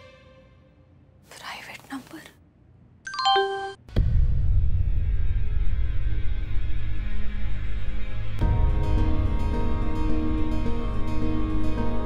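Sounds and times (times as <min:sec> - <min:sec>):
phone notification chime: 0:03.1 - 0:03.8.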